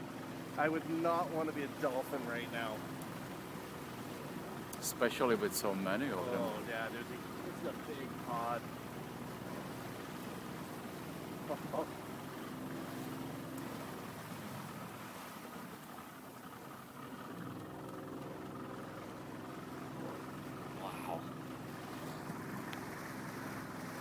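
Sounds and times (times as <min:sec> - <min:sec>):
light wind: 0:00.0 - 0:24.0
small boat motor running: 0:00.0 - 0:24.0
water noise: 0:00.0 - 0:24.0.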